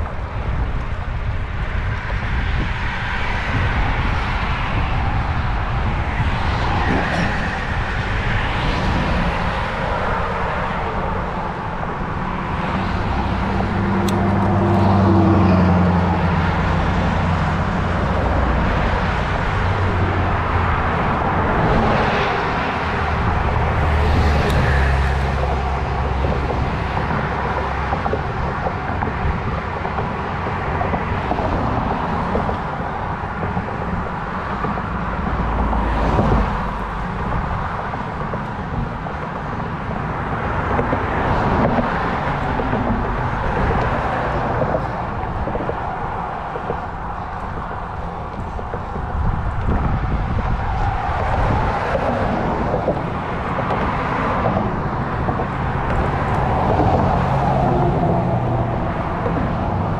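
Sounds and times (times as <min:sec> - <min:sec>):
vehicles passing: 0:00.0 - 0:59.9
wind and road noise: 0:00.0 - 0:59.9.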